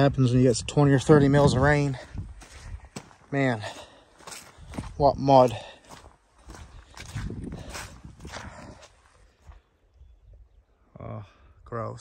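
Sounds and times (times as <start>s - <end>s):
footsteps in wet mud: 1.6s - 9.7s.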